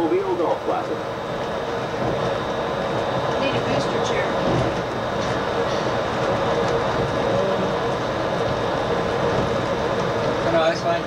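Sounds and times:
monorail running noise: 0:00.0 - 0:11.0.

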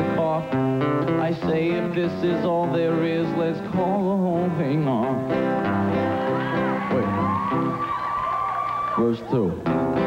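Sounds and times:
band backing music: 0:00.0 - 0:10.0
audience laughing and cheering: 0:05.9 - 0:09.6.

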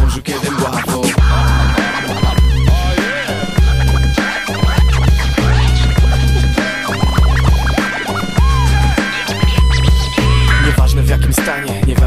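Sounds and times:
turntable scratching: 0:00.0 - 0:10.8
hip hop beat with bass and drums: 0:00.0 - 0:12.0.

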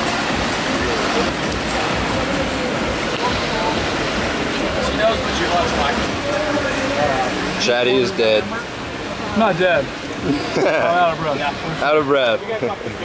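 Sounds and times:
faint echoing voices: 0:00.0 - 0:13.0
splashing water: 0:00.0 - 0:13.0.

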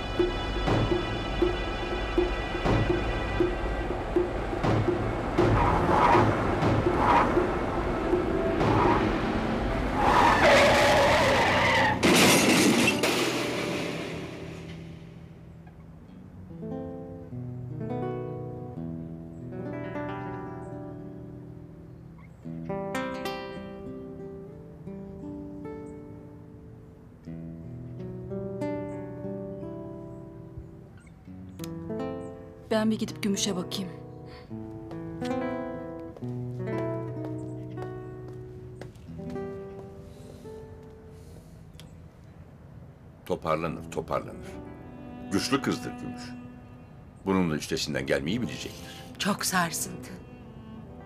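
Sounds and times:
dramatic music: 0:00.0 - 0:15.3
loud car crash impacts: 0:10.6 - 0:15.0
breaking glass: 0:12.0 - 0:14.2
plucked acoustic guitar music: 0:15.5 - 0:26.7, 0:31.2 - 0:40.0.

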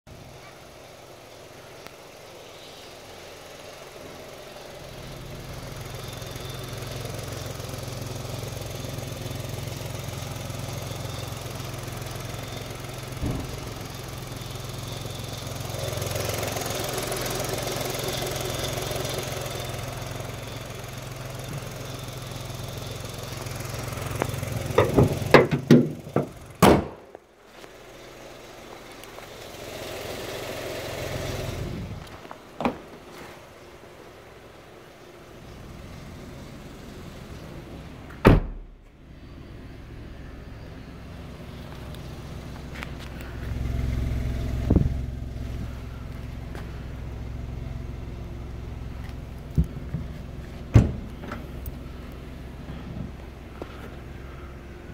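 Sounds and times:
car engine idling: 0:00.1 - 0:54.9.

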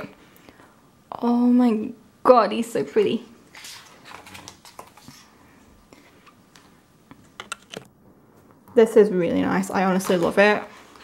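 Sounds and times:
paper pages rustling: 0:03.5 - 0:05.3.

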